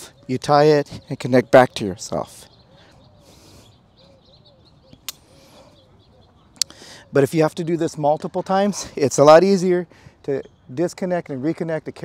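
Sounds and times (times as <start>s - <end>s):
faint bird chirps: 0.0s - 8.9s.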